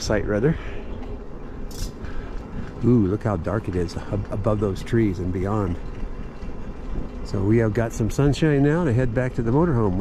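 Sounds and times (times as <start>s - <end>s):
wind and road noise: 0.0s - 10.0s.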